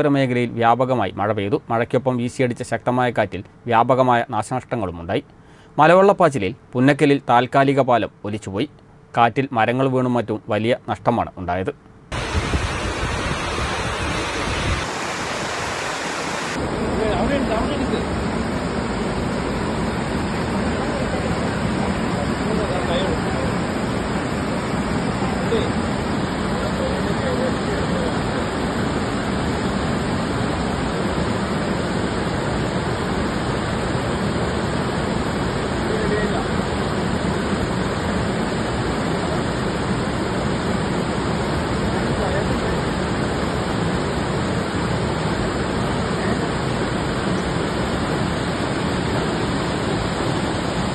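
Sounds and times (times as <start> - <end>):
stream rushing over boulders: 12.1 - 17.0
storm wind rushing through trees: 12.1 - 50.9
wind buffeting microphone: 12.2 - 15.5.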